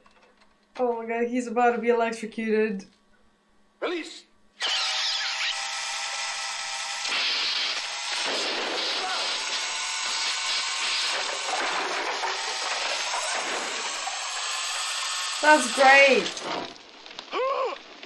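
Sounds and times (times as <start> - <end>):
small motor whirring: 4.6 - 16.7.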